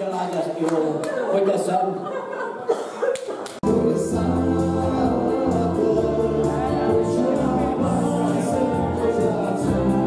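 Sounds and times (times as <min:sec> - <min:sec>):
person singing: 0:03.6 - 0:10.0.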